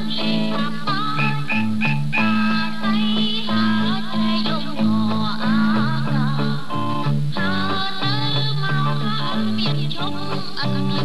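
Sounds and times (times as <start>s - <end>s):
steady bass line: 0.0s - 4.1s
instrumental accompaniment: 0.0s - 11.0s
woman singing: 0.0s - 11.0s.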